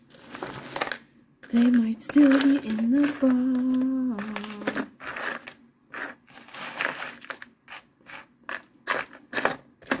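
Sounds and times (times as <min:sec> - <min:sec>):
jewelry rustling in a box: 0:00.0 - 0:09.6.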